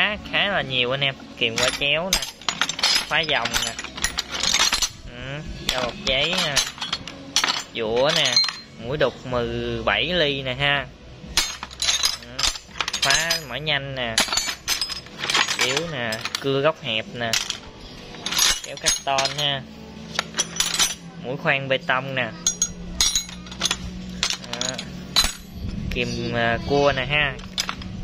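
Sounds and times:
metal tools clinking: 0:00.0 - 0:09.0, 0:11.3 - 0:21.1, 0:22.4 - 0:28.0.

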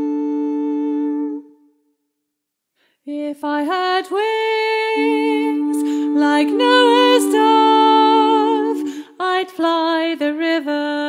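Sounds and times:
steady pitched note: 0:05.6 - 0:09.0.

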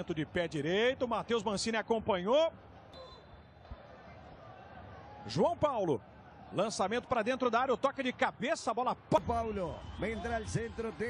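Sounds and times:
faint stadium crowd noise: 0:00.0 - 0:11.0
football broadcast commentary: 0:00.0 - 0:11.0.

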